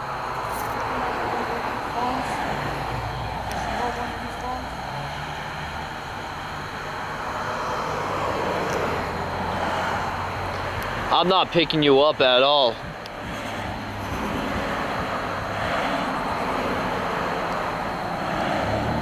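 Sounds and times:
cars passing by: 0.0s - 19.0s.

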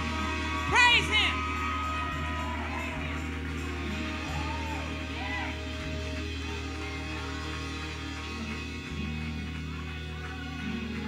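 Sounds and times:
faint audience voices calling: 0.0s - 11.0s
live gospel band: 0.0s - 11.0s.

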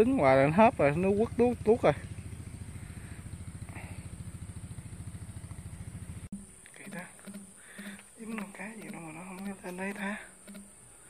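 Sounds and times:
small engine running: 0.0s - 11.0s.

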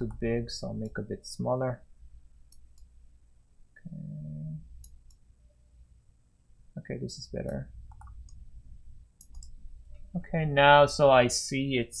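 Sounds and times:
low steady hum: 0.0s - 12.0s
computer mouse clicks: 2.5s - 2.9s, 4.8s - 5.3s, 7.4s - 8.5s, 9.2s - 10.0s.

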